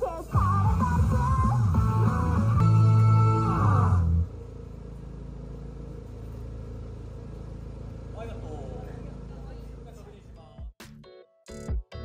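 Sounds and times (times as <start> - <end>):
music playback: 0.0 - 4.4, 10.4 - 12.0
low machine hum: 0.2 - 10.7.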